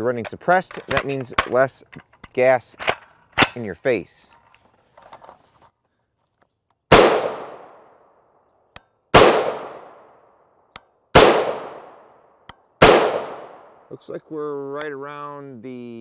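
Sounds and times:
rifle shots with echo: 0:06.9 - 0:08.1, 0:09.1 - 0:10.2, 0:11.1 - 0:12.2, 0:12.8 - 0:13.9.

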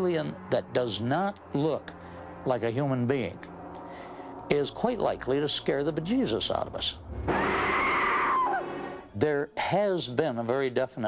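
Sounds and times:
woman screaming: 0:07.3 - 0:08.6.

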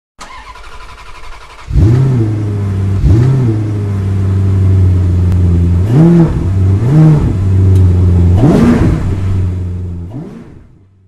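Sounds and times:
car engine revving and idling: 0:00.2 - 0:11.0.

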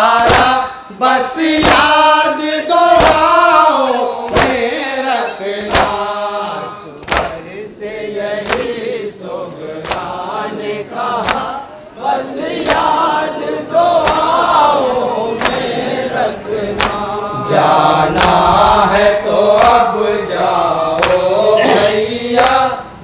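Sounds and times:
men chanting together: 0:00.0 - 0:23.0
hands slapping chests: 0:00.2 - 0:00.6, 0:02.9 - 0:03.3, 0:04.3 - 0:04.6, 0:05.6 - 0:06.0, 0:07.0 - 0:07.4, 0:08.4 - 0:08.8, 0:09.8 - 0:10.1, 0:11.2 - 0:11.5, 0:12.6 - 0:13.0, 0:14.0 - 0:14.4, 0:15.4 - 0:15.7, 0:16.7 - 0:17.1, 0:18.1 - 0:18.4, 0:21.0 - 0:21.3.

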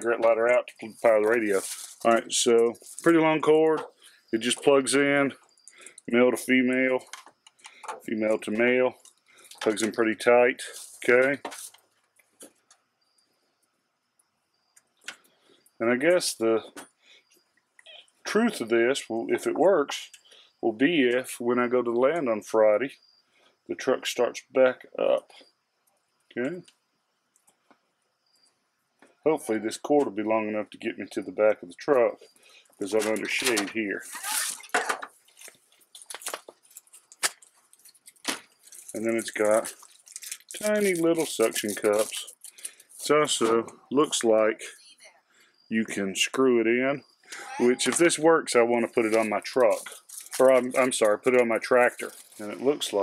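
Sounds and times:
cable rustling: 0:00.0 - 0:04.8, 0:10.6 - 0:12.0, 0:32.9 - 0:43.2, 0:49.0 - 0:53.0
man talking: 0:00.0 - 0:05.4, 0:06.1 - 0:07.1, 0:08.0 - 0:09.0, 0:09.6 - 0:11.6, 0:15.8 - 0:16.8, 0:18.3 - 0:22.9, 0:23.7 - 0:25.4, 0:26.3 - 0:26.6, 0:29.3 - 0:32.2, 0:32.8 - 0:34.1, 0:38.9 - 0:39.8, 0:40.6 - 0:42.4, 0:43.0 - 0:44.8, 0:45.7 - 0:53.0
plastic parts clicking and tapping: 0:07.0 - 0:08.1.

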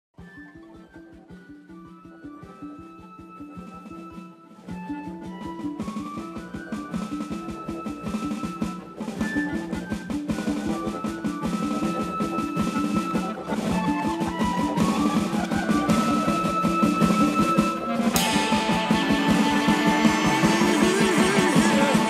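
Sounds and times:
electronic drum groove: 0:06.8 - 0:22.0
cymbal crash: 0:18.1 - 0:22.0.

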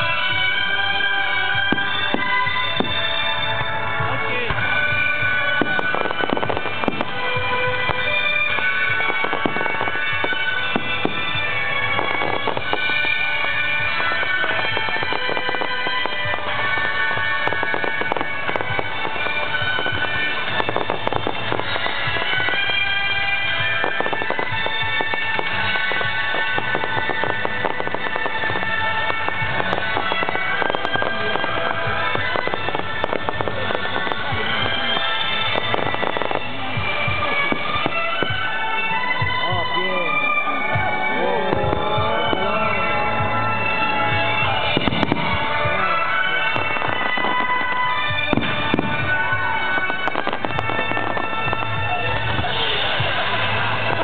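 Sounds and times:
fireworks bursts and bangs: 0:00.0 - 0:54.0
music playing: 0:00.0 - 0:54.0.

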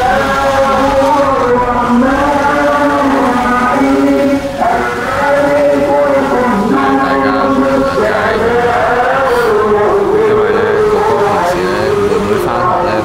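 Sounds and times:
person singing long held notes: 0:00.0 - 0:13.0.

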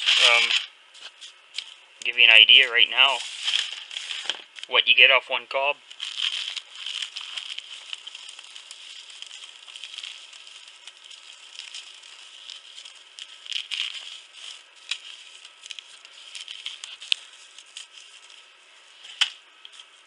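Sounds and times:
corn kernels dropping on newspaper: 0:00.0 - 0:01.8, 0:03.0 - 0:04.7, 0:05.8 - 0:20.0.

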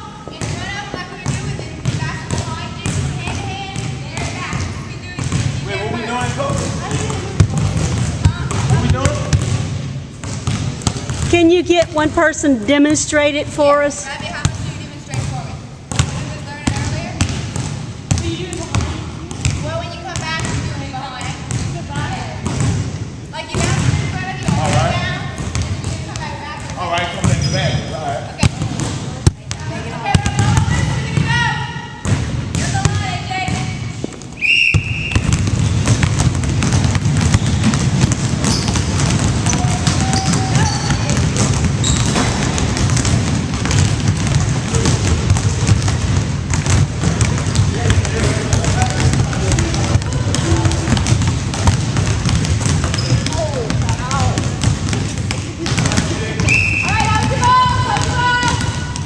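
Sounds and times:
basketballs bouncing on hardwood floor: 0:00.1 - 0:27.5, 0:28.3 - 0:59.0.

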